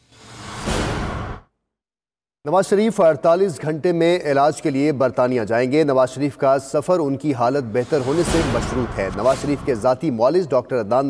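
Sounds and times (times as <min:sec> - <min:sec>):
whoosh sound effect: 0:00.1 - 0:01.4, 0:07.7 - 0:10.0.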